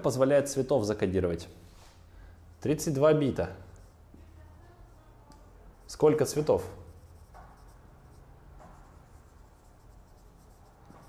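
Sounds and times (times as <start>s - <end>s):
marker scratching on whiteboard: 2.5s - 11.0s.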